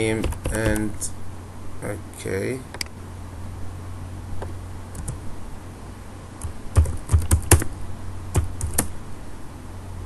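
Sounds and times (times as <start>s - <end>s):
keyboard typing: 0.0s - 1.0s, 4.9s - 5.2s, 6.4s - 7.7s, 8.3s - 9.0s
steady low hum: 0.0s - 10.0s.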